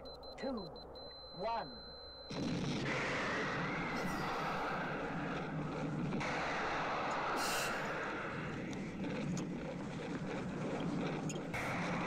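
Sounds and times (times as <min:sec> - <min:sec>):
spaceship explosion blast: 0:02.3 - 0:12.0.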